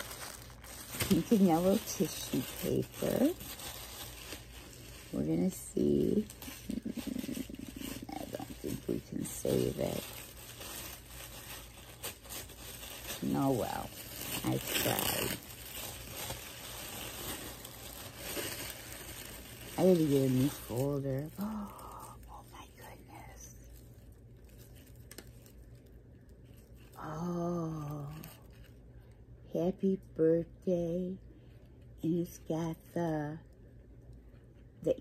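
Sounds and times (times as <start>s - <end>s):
tissue paper tearing: 0.0s - 25.8s
tissue paper rustling and crinkling: 0.0s - 28.8s.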